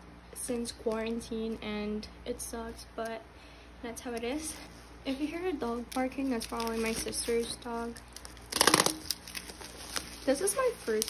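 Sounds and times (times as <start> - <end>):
bubble wrap crinkling and tearing: 5.6 - 11.0.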